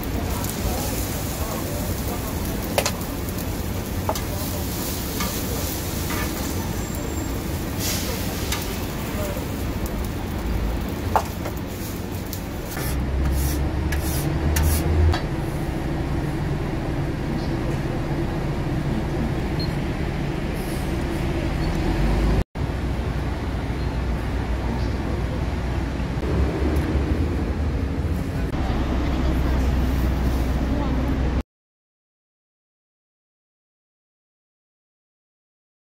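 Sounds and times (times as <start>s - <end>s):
low rumble of traffic: 0.0s - 31.4s.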